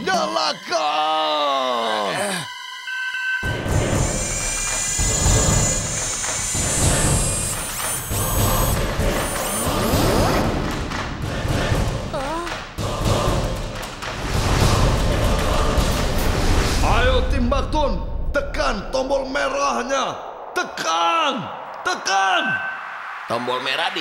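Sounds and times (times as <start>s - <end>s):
dramatic background music: 0.0s - 24.0s
electronic chirps and whirs: 3.4s - 10.1s.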